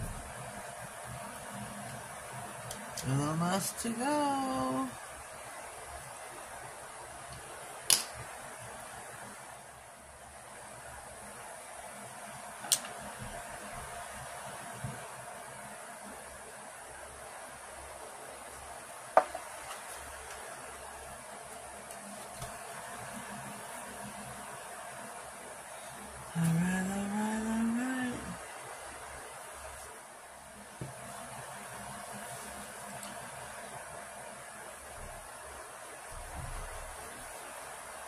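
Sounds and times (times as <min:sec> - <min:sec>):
faint room hiss: 0:00.0 - 0:38.0.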